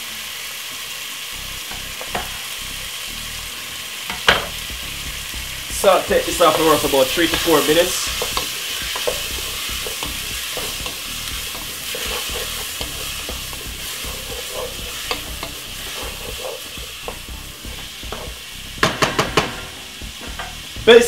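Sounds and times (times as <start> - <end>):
vegetables sizzling in oil: 0.0 - 21.0
wooden spoon knocking on pot: 8.1 - 20.6.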